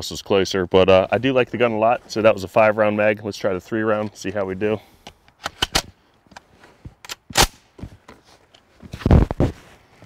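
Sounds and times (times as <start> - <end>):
shotgun metallic clicks and clacks: 5.3 - 5.9.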